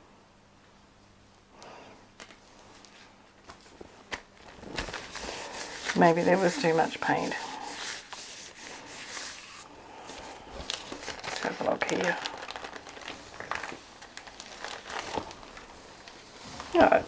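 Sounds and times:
thin paper crinkling: 0:02.2 - 0:17.0
paper peeled off plate: 0:04.8 - 0:15.4.

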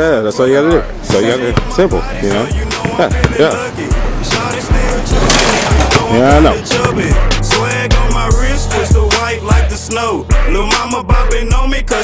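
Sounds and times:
hip-hop music with heavy bass: 0:00.0 - 0:12.0.

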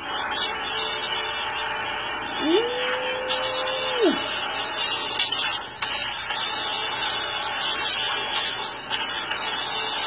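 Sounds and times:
soundtrack from laptop: 0:00.0 - 0:10.0.

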